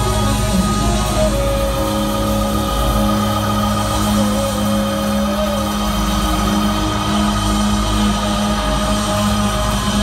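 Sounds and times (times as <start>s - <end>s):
live band playing amplified music: 0.0s - 10.0s.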